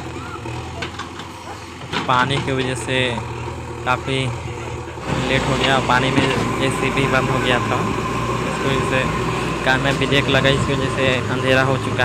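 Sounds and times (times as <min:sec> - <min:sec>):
backhoe diesel engine running: 0:00.0 - 0:12.0.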